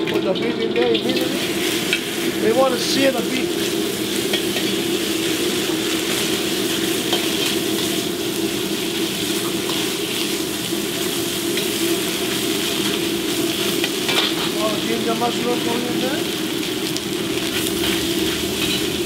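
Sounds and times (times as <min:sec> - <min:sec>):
gas burner rushing: 0:00.0 - 0:19.0
meat sizzling in hot oil: 0:00.0 - 0:19.0.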